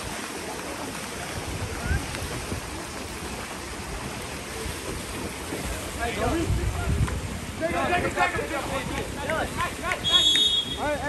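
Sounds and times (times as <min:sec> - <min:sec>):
referee whistle blast: 0:10.0 - 0:10.9.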